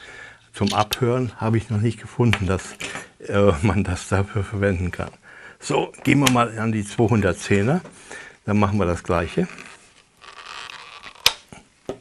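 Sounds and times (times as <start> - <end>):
plastic rubbing and scraping: 9.0 - 11.6.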